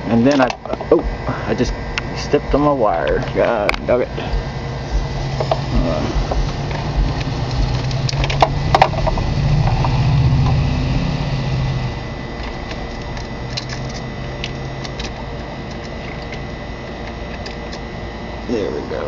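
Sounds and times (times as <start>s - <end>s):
steady low hum: 0.0s - 19.0s
electrical lead clicking: 0.2s - 10.7s, 12.3s - 17.9s.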